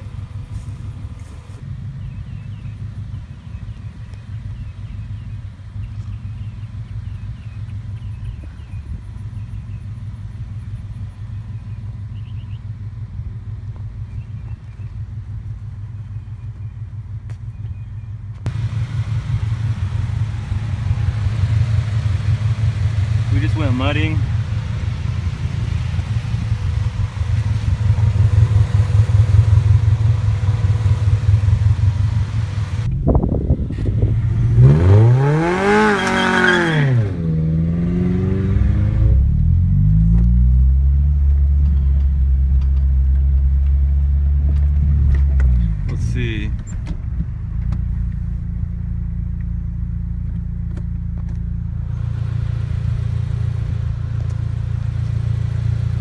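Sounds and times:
car engine idling and revving: 0.0s - 56.0s
low drone of car driving: 0.0s - 56.0s.

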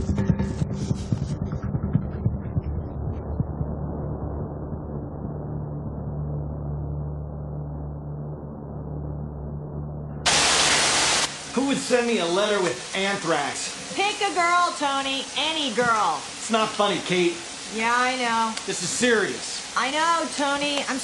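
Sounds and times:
background music with a beat: 0.0s - 6.8s
low steady drone: 0.0s - 11.3s
shower water spraying: 10.3s - 21.0s.

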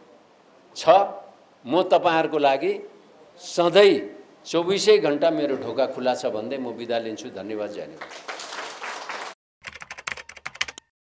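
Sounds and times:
audience applauding: 8.0s - 9.4s
computer keyboard typing: 9.6s - 10.9s.

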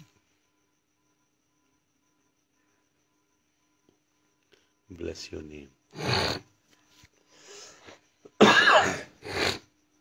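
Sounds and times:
faint breath: 7.2s - 8.2s
person coughing: 8.4s - 9.4s.

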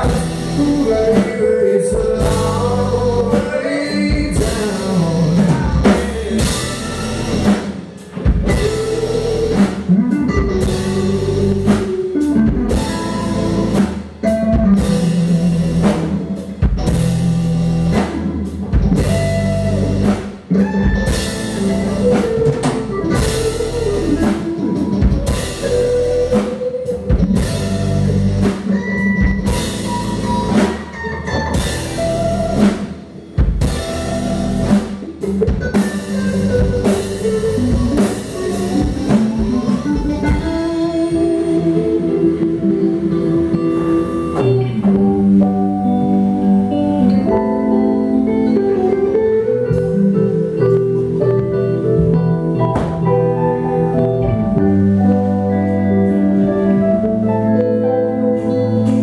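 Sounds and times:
bass guitar: 0.0s - 59.0s
drum kit: 0.0s - 59.0s
electric guitars: 0.0s - 59.0s.

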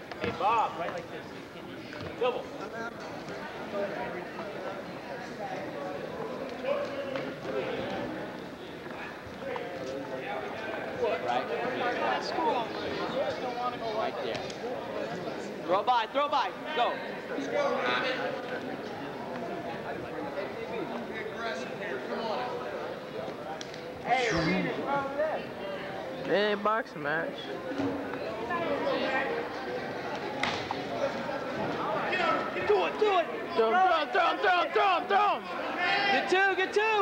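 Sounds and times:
chatter of many voices: 0.0s - 37.0s
indistinct voices: 24.0s - 25.2s.

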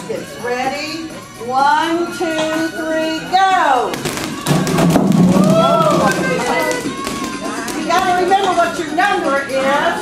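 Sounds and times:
rubber balls bouncing on hard floor: 3.9s - 8.6s.

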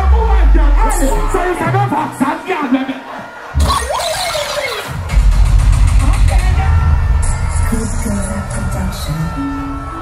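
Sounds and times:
dancehall music: 0.0s - 10.0s.

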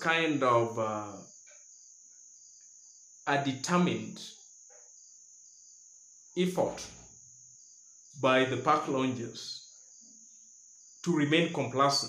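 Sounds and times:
man speaking: 0.0s - 1.2s, 3.3s - 4.3s, 6.4s - 7.0s, 8.2s - 9.6s, 11.0s - 12.0s
crickets trilling: 0.0s - 12.0s.

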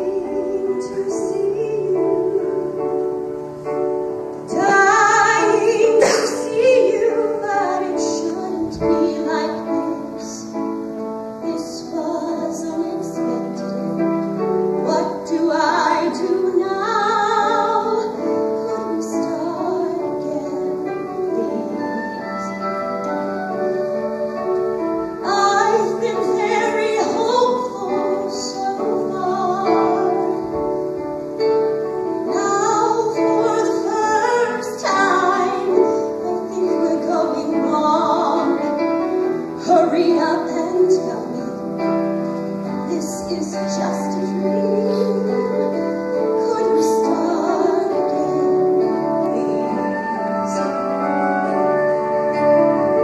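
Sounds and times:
woman singing: 0.0s - 3.3s, 4.4s - 10.7s, 11.4s - 22.7s, 25.0s - 30.9s, 32.2s - 53.0s
instrumental accompaniment: 0.0s - 53.0s.

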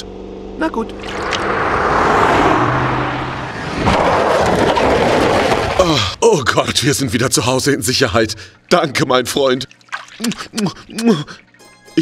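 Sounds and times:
cartoon car rushing: 0.6s - 5.8s.

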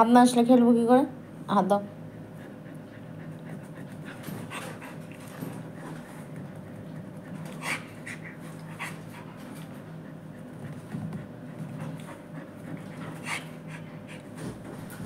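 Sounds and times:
dog panting: 1.1s - 15.0s.

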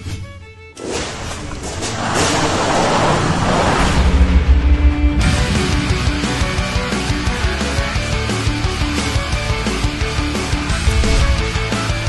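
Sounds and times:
loud even rushing noise: 0.9s - 6.8s, 10.7s - 11.9s.

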